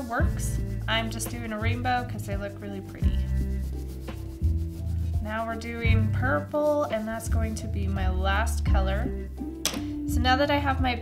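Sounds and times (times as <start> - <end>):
crayon rubbing on paper: 0.0 - 7.9
background music with bass: 0.0 - 11.0.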